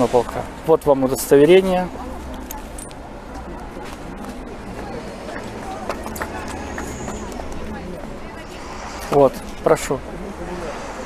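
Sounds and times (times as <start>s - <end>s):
faint voices: 1.9s - 11.0s
steady low hum: 8.0s - 11.0s.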